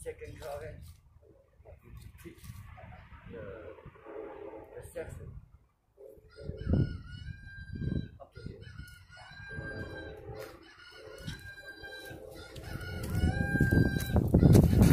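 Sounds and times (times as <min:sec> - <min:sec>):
rooster crowing: 0:06.2 - 0:14.6.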